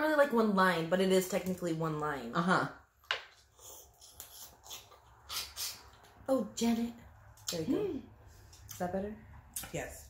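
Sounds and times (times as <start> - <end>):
soft chewing: 3.4 - 6.2.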